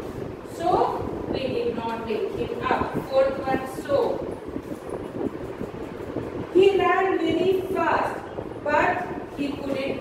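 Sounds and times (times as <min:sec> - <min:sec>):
speech: 0:00.5 - 0:04.2, 0:06.6 - 0:10.0.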